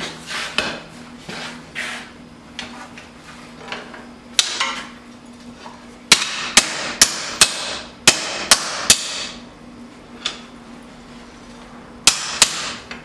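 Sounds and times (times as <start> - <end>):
hammer striking steel on anvil: 6.1 - 9.4, 12.1 - 13.0.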